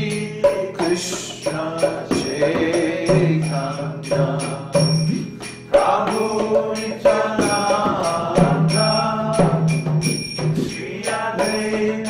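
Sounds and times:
man singing a chant: 0.0s - 5.2s, 5.8s - 9.9s, 10.7s - 12.0s
hand drum strokes: 0.0s - 12.0s.

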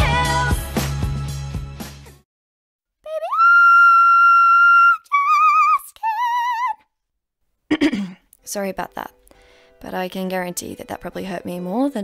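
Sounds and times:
high-pitched singing voice: 3.0s - 3.6s, 4.9s - 6.9s.

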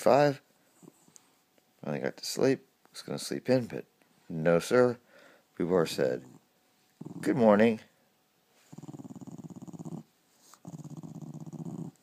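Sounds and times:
dog growling: 6.1s - 7.6s, 8.6s - 12.0s.

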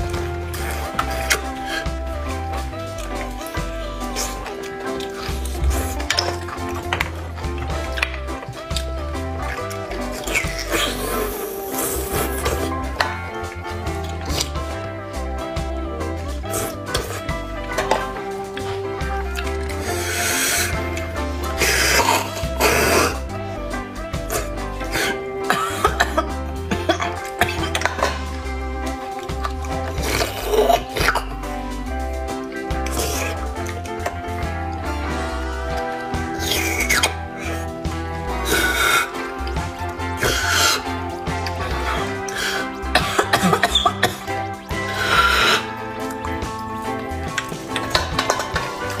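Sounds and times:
loud slurps: 0.0s - 14.9s, 16.1s - 31.4s, 32.6s - 49.0s
sucking marrow from bone: 0.0s - 31.6s, 32.7s - 49.0s
background music with bass line: 0.0s - 49.0s
wet mouth clicks: 3.0s - 13.3s, 35.8s - 37.7s.

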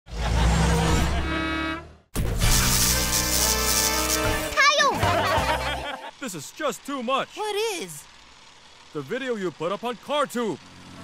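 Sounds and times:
vehicle sound effects: 0.1s - 11.0s.

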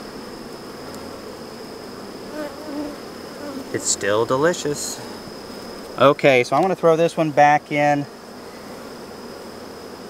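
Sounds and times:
bees buzzing: 0.0s - 10.0s.

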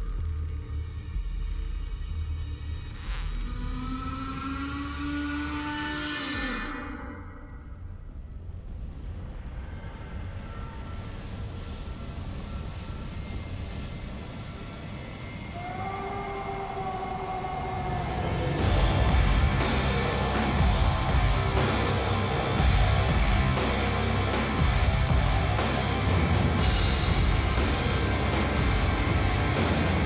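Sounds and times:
low rumbling drone: 0.0s - 30.0s.

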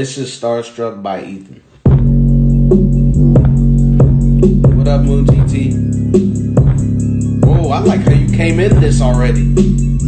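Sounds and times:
instrumental beat with heavy bass: 1.8s - 10.0s.

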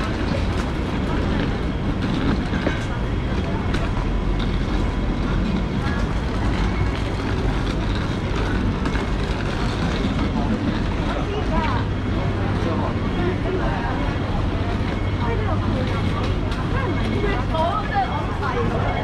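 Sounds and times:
chatter of passers-by: 0.0s - 19.0s
low rumble of traffic: 0.0s - 19.0s.

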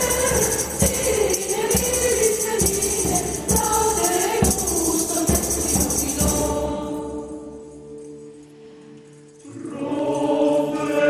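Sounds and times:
mixed choir singing: 0.0s - 7.6s, 9.4s - 11.0s
jingling hand percussion beat: 0.0s - 11.0s.

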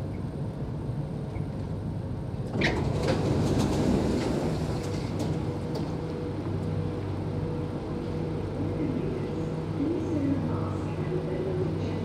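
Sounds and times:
stopped train humming: 0.0s - 12.0s
train doors sliding open: 2.4s - 6.2s.

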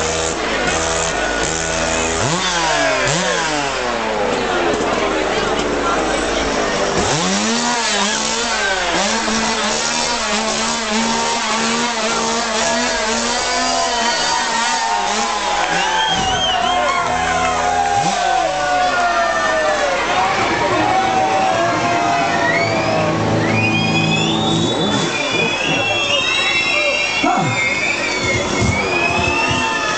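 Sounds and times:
chainsaw engine revving: 0.0s - 21.2s, 22.3s - 29.9s
noisy crowd: 0.0s - 29.9s.

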